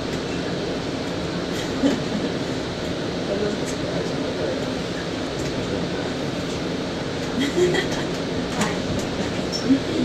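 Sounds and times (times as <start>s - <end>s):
passengers' voices: 0.0s - 10.0s
trolley car running noise: 0.0s - 10.0s
person laughing: 7.4s - 8.1s.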